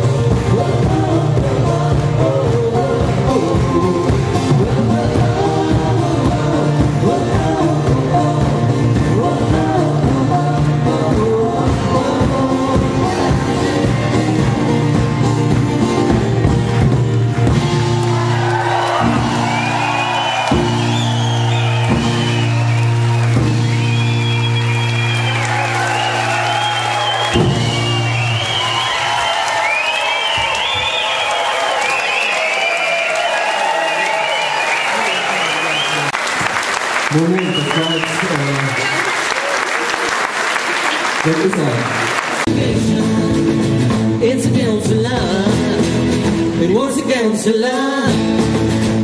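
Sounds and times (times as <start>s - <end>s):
live band holding a chord: 0.0s - 49.0s
audience applauding and cheering: 13.2s - 42.9s
drum hits: 27.0s - 29.2s.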